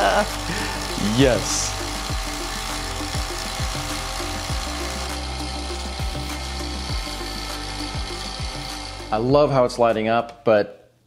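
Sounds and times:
rasping hissing machine noise: 0.0s - 9.3s
background music with kick drum: 0.0s - 10.4s.

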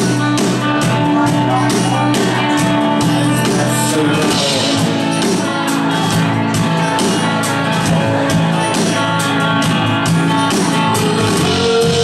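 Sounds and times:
electric guitar: 0.0s - 12.0s
live rock band playing: 0.0s - 12.0s
steady drum beat: 0.0s - 12.0s.

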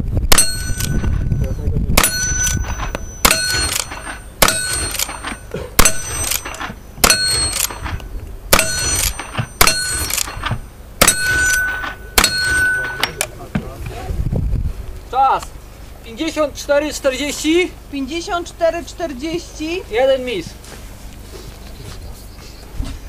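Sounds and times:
rifle shots: 0.3s - 1.2s, 2.0s - 13.2s
steel target plate ringing: 0.3s - 13.4s.

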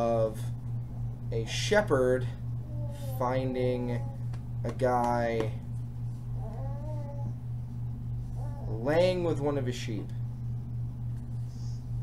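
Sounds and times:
steady low hum: 0.0s - 12.0s
baby whimpering: 2.6s - 4.3s, 6.4s - 7.4s, 8.3s - 9.0s.

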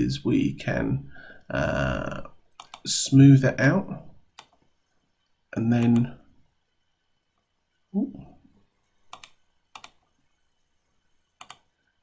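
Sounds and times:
mouse and keyboard clicks: 2.5s - 2.8s, 9.1s - 10.0s, 11.4s - 11.7s.

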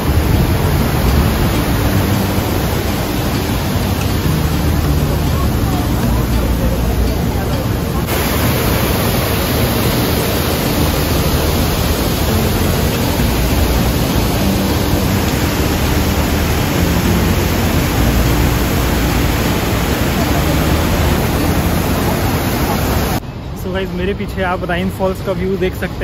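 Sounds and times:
waterfall rushing over rocks: 0.0s - 23.2s.

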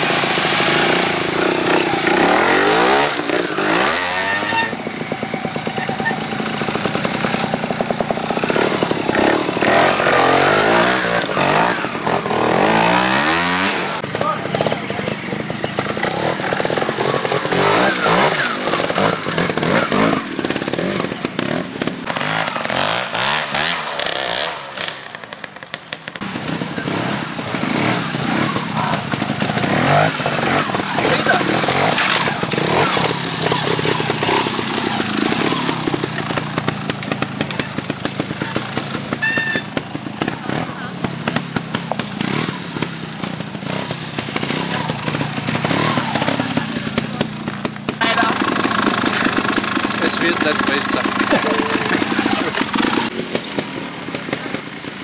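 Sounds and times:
motorcycle engines revving: 0.0s - 55.0s.

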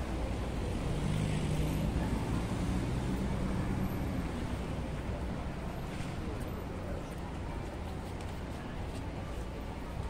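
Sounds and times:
road noise rumble: 0.0s - 10.0s.

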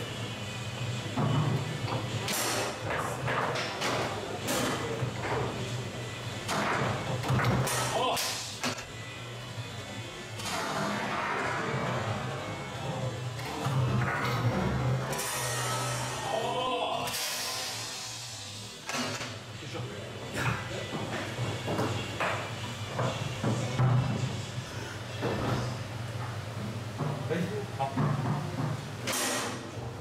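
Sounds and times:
foosball rods knocking: 1.2s - 5.6s.

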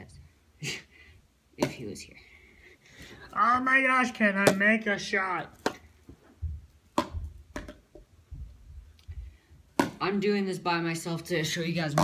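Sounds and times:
soft low thumps: 6.2s - 9.8s.

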